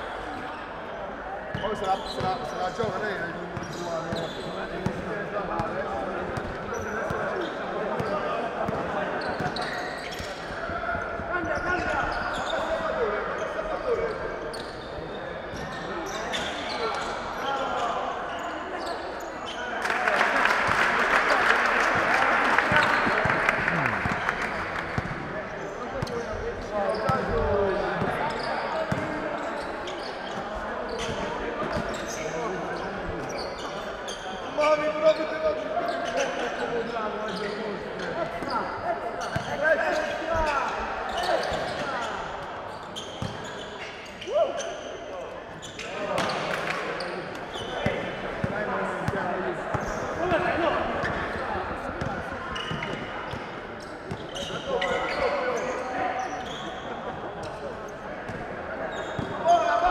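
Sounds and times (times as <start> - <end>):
crowd noise from stands: 0.0 - 59.9
voices in hall: 0.0 - 59.9
sneakers squeaking: 1.5 - 20.0, 22.6 - 59.9.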